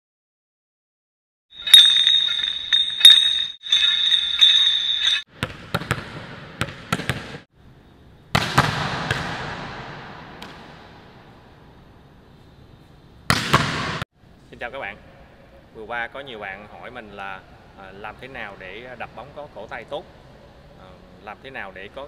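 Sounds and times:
bright ringing high tone: 1.6 - 5.3
volleyball smack echoing: 13.3 - 14.0.

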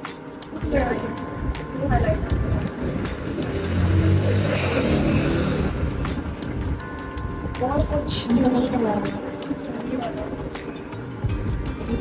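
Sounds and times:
motor vehicle engine hum: 1.4 - 7.5.

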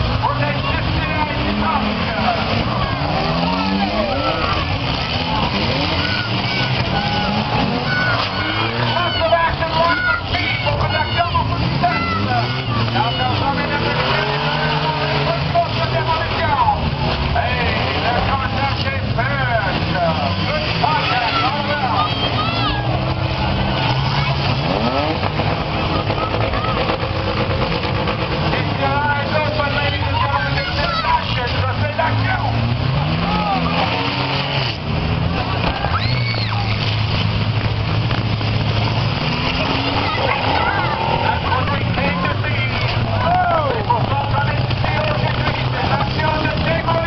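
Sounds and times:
car engines revving: 0.0 - 47.0
crowd voices: 0.0 - 47.0.

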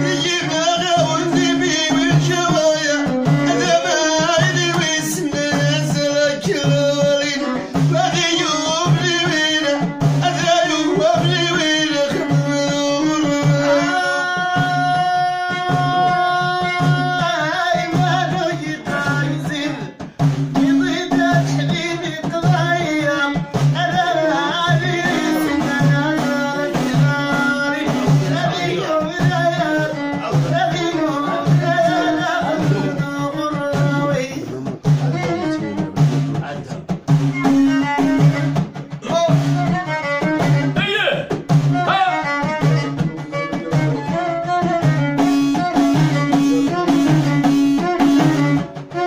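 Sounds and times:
woman singing a folk song: 0.0 - 19.9, 20.7 - 34.3
bowed violin: 0.0 - 49.0
hand-beaten frame drums: 0.0 - 49.0.

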